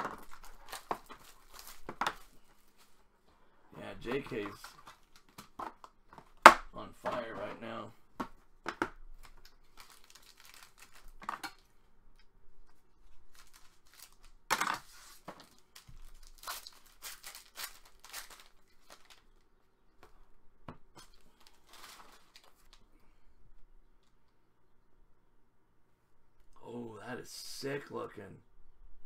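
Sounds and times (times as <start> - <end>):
foil pack tearing and crinkling: 0.0 - 2.3, 9.2 - 11.6, 13.3 - 14.3, 14.9 - 19.2, 21.4 - 22.7
card box opening: 4.0 - 6.4.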